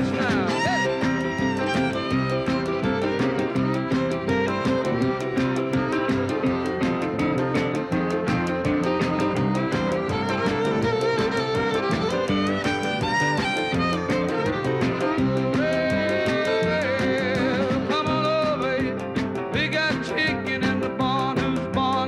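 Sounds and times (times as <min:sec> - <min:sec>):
fast drum beat: 0:00.0 - 0:22.0
rock and roll band: 0:00.0 - 0:22.0.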